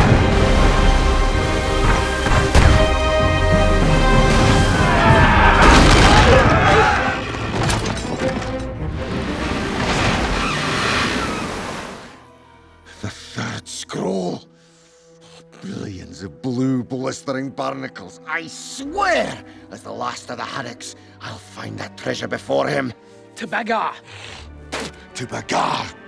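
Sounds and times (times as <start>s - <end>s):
dramatic orchestral music: 0.0s - 26.0s
cannon booms and crashes: 1.8s - 3.2s, 4.3s - 7.6s.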